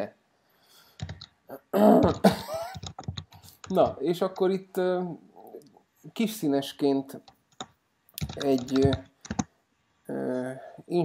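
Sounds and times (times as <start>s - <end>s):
person clearing throat: 1.5s - 2.7s.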